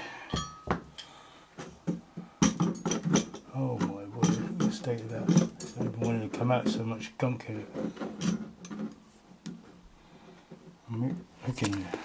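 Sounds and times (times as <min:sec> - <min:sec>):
metal clinks and knocks: 0:00.3 - 0:06.9, 0:07.7 - 0:09.7
person speaking: 0:03.5 - 0:07.9, 0:10.9 - 0:12.0.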